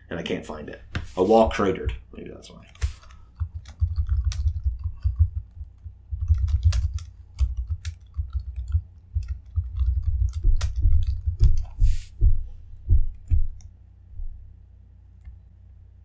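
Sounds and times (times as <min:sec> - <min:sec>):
laptop keyboard typing: 0:02.7 - 0:11.9.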